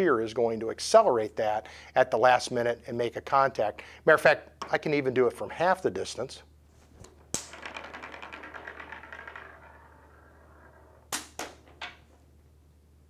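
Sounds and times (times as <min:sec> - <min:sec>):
balls clicking together: 0:07.0 - 0:12.1.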